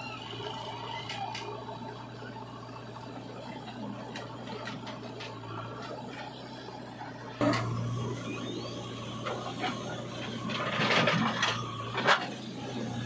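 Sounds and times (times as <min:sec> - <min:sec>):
diesel engine under load: 0:00.0 - 0:13.0.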